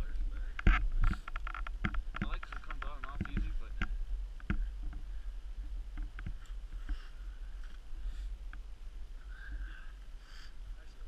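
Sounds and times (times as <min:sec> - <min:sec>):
sharp clicks and knocks: 0:00.6 - 0:05.0, 0:05.9 - 0:07.0.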